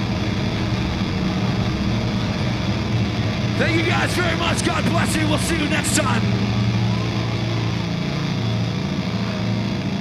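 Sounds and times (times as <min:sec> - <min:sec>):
distorted guitar and bass drone: 0:00.0 - 0:10.0.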